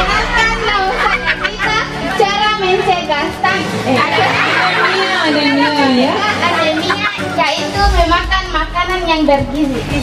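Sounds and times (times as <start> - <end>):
girls chattering: 0.0 - 8.7
background music: 0.0 - 10.0
girl speaking through microphone: 4.7 - 10.0.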